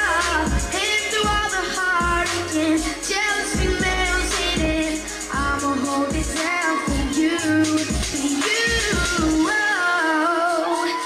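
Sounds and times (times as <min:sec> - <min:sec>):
pop song with solo voice: 0:00.0 - 0:11.0.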